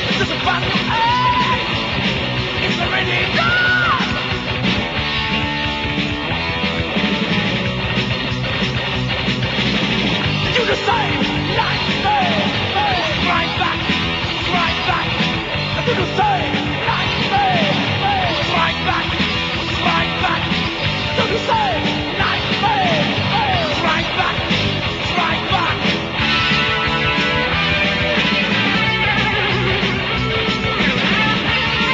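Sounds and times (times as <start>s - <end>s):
heavy metal instrumental: 0.0s - 31.9s
high lead guitar line: 0.0s - 31.9s.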